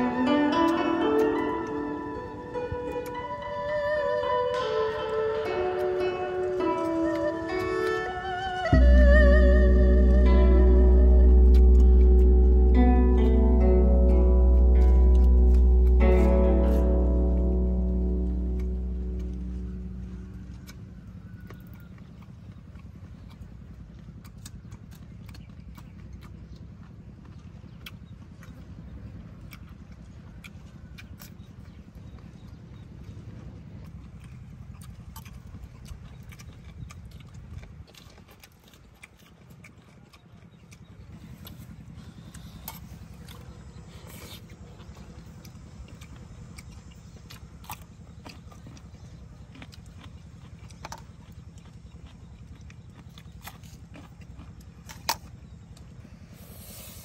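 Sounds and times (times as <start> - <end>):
chewing with crunches: 0.0 - 57.0
low steady rumble: 0.0 - 57.0.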